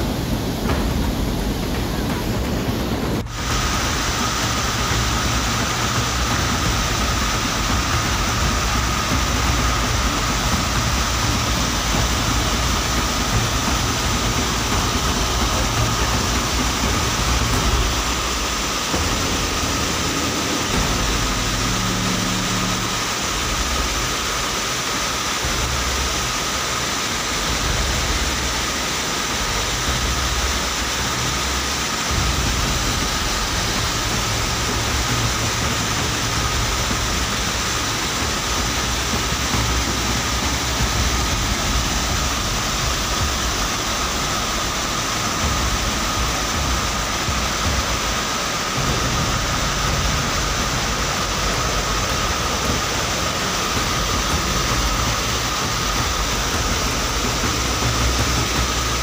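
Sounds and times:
floodwater rushing: 0:00.0 - 0:59.0
low rumble: 0:00.0 - 0:59.0.

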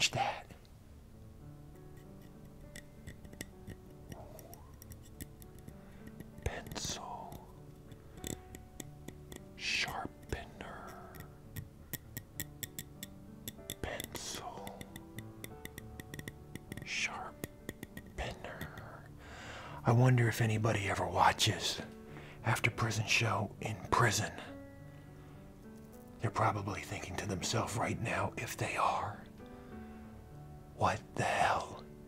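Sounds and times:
pencil sharpener crackling clicks: 0:02.0 - 0:06.8.

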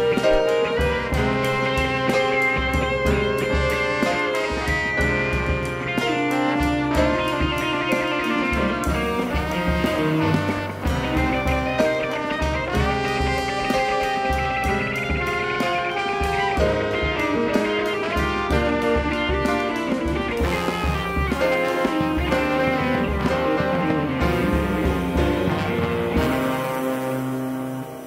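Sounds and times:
drum kit beat: 0:00.0 - 0:28.0
electric guitar: 0:00.0 - 0:28.0
trombone held notes: 0:00.0 - 0:28.0.

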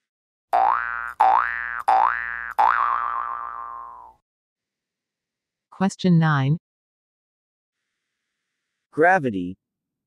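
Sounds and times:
cartoon boing sound effect: 0:00.6 - 0:04.2.

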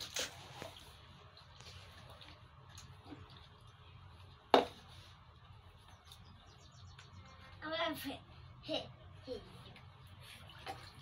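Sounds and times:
water lapping and splashing: 0:00.0 - 0:06.3, 0:09.4 - 0:11.0.

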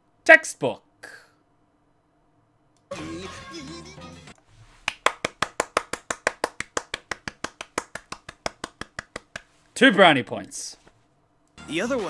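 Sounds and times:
person clapping hands quickly: 0:04.8 - 0:09.5.

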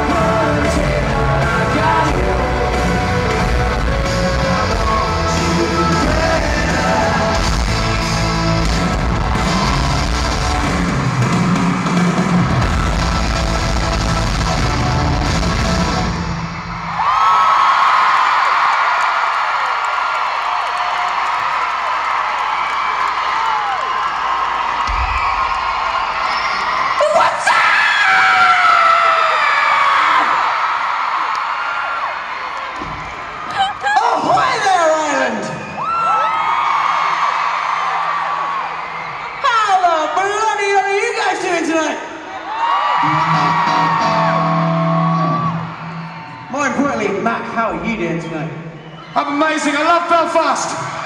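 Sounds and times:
live rock band with electric guitars: 0:00.0 - 0:16.8, 0:43.0 - 0:46.2
crowd screaming and cheering: 0:00.0 - 0:51.0.

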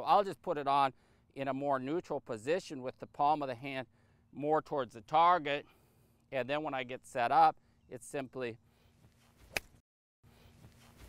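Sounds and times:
golf club swish: 0:09.0 - 0:09.8, 0:10.4 - 0:11.0.

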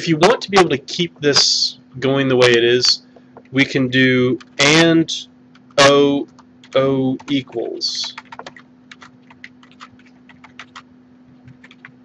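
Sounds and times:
keyboard typing: 0:04.3 - 0:04.7, 0:05.5 - 0:12.0.

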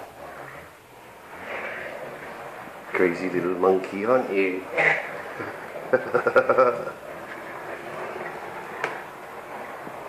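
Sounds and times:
toy pushchair rolling on wooden floor: 0:00.0 - 0:10.0.

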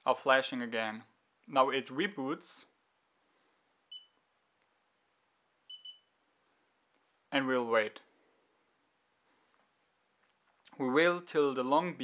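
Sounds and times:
camera beeps: 0:03.9 - 0:04.2, 0:05.7 - 0:06.1.

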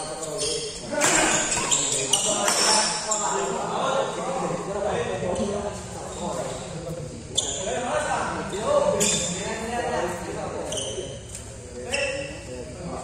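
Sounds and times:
people chatting in a hall: 0:00.0 - 0:13.0.

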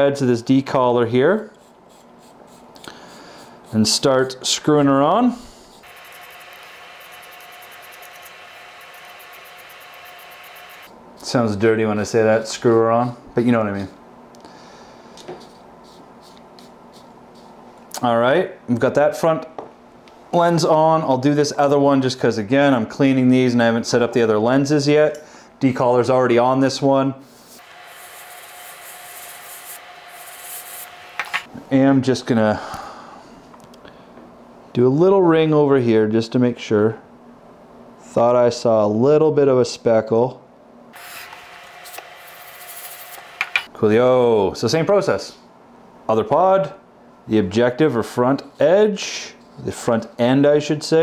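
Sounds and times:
faint constant hum: 0:00.0 - 0:41.3, 0:41.9 - 0:51.0.

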